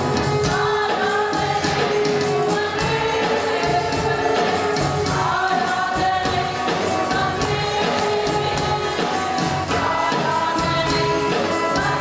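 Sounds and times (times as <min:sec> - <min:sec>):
violin: 0:00.0 - 0:12.0
woman singing into microphone: 0:00.4 - 0:12.0.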